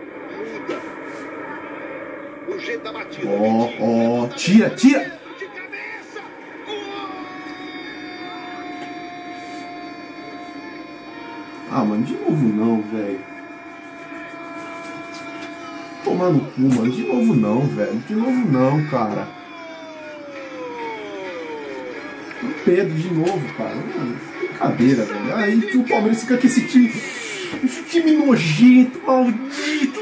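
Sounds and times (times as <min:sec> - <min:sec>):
tv broadcast background noise: 0:00.0 - 0:30.0.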